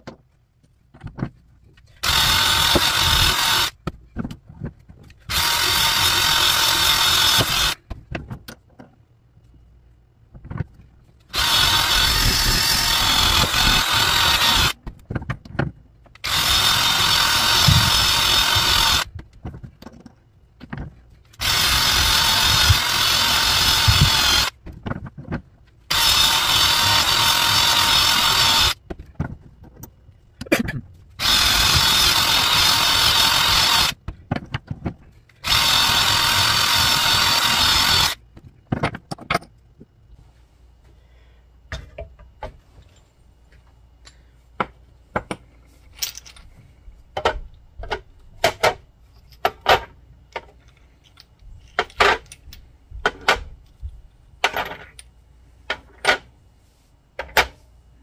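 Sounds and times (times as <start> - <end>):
drill with wire brush scrubbing metal: 2.0 - 3.8, 5.2 - 7.8, 11.3 - 14.8, 16.2 - 19.1, 21.4 - 24.6, 25.9 - 28.8, 31.2 - 34.0, 35.4 - 38.2
clicks and knocks: 38.3 - 39.9.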